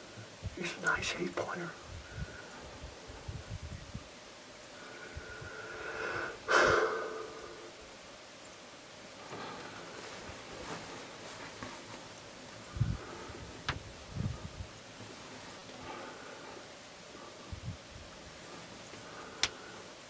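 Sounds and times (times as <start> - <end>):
loud burst of breath: 4.8 - 7.7.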